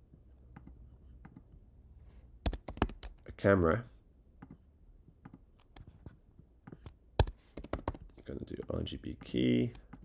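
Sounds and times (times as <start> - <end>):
keyboard keystrokes: 2.5 - 3.2, 6.7 - 8.0.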